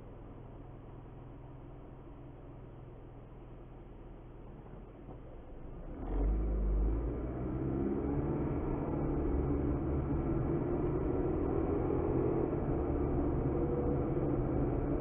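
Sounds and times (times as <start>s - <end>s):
road noise rumble: 3.8s - 15.0s
car engine accelerating: 5.9s - 15.0s.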